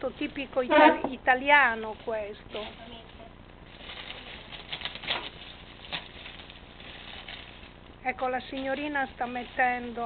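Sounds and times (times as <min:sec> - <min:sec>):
wool rustling: 0:01.8 - 0:10.0.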